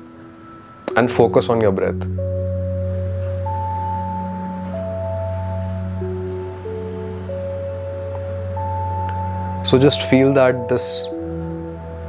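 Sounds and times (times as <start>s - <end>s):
soft held tones: 0.0s - 12.0s
steady low drone: 0.0s - 12.0s.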